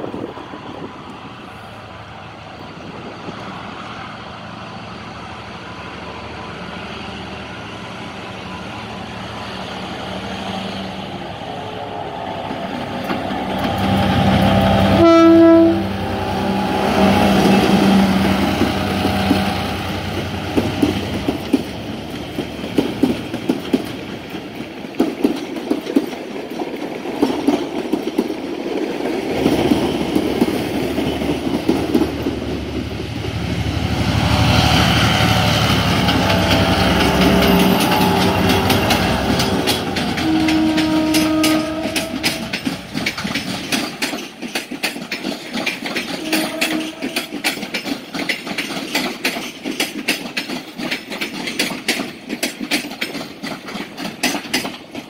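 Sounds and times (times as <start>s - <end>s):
diesel locomotive engine: 0.0s - 55.0s
train horn blast: 14.0s - 18.1s, 34.3s - 42.7s, 46.1s - 47.4s
wheel clicks over rail joints: 37.1s - 55.0s.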